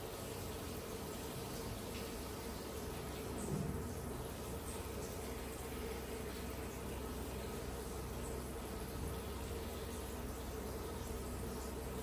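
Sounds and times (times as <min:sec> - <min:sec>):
steady buzzing hum: 0:00.0 - 0:12.0.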